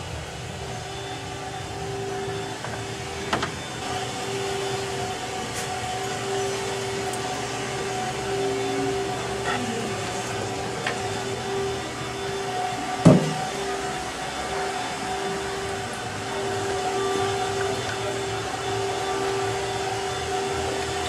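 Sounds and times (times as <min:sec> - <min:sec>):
steady mechanical hum: 0:00.0 - 0:21.0
sharp knock: 0:13.1 - 0:13.4.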